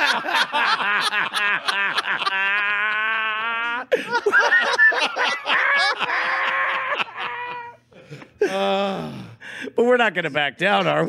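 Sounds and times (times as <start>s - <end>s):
man laughing hard: 0.0s - 7.8s.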